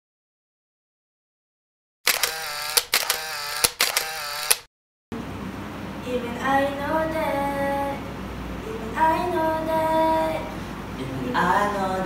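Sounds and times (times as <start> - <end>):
camera shutter clicks: 2.1 - 4.7.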